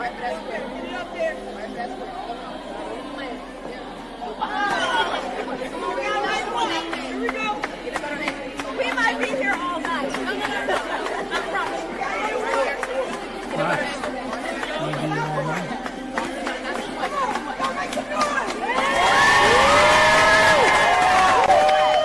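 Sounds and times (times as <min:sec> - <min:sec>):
crowd chattering: 0:00.0 - 0:22.0
crowd cheering and shrieking: 0:18.5 - 0:22.0.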